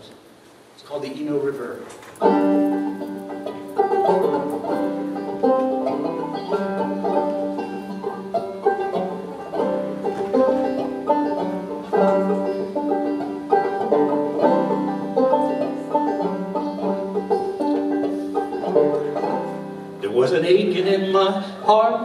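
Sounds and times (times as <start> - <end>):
banjo picking: 2.2 - 22.0.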